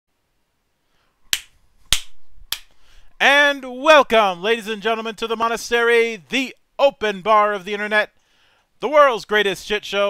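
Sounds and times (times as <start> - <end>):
sharp snaps: 1.3 - 2.8.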